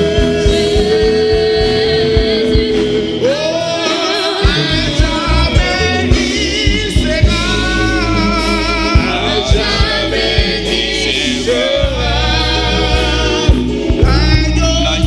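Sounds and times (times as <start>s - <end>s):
church band with bass: 0.0s - 15.0s
group singing gospel in harmony: 0.0s - 15.0s.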